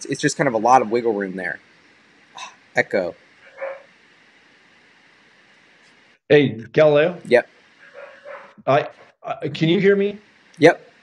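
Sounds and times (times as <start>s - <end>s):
microphone line hiss: 0.0s - 11.0s
spoken word: 6.3s - 7.4s.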